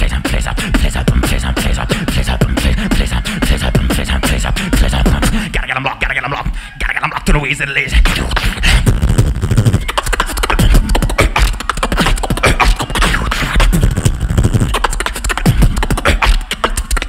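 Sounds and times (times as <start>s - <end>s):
person beatboxing: 0.0s - 17.0s.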